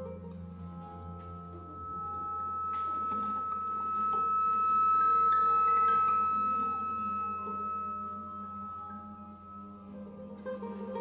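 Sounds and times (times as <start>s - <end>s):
quiet pitched sounds: 0.0s - 11.0s
soft harp notes: 0.0s - 11.0s
steady high tone: 0.0s - 11.0s.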